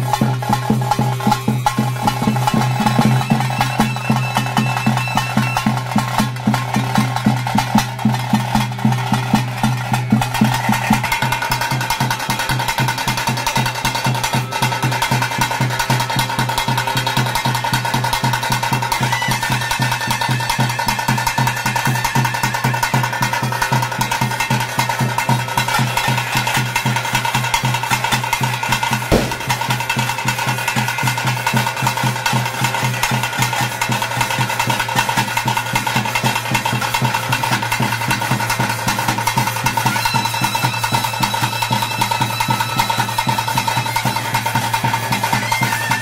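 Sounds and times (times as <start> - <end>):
fast drumming: 0.0 - 46.0
sharp loud crack: 29.1 - 30.3.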